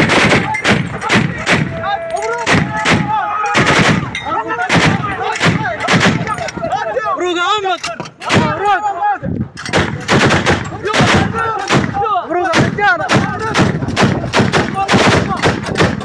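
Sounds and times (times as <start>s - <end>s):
gunshots: 0.0s - 6.5s, 9.6s - 16.0s
men shouting: 0.3s - 9.2s, 10.6s - 15.7s.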